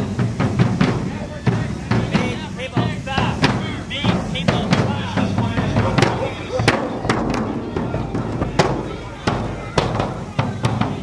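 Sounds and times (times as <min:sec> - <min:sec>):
street crowd voices: 0:00.0 - 0:11.0.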